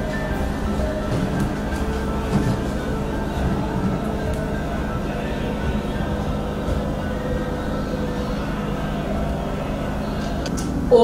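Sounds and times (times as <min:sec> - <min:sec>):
church music on television: 0:00.0 - 0:10.9.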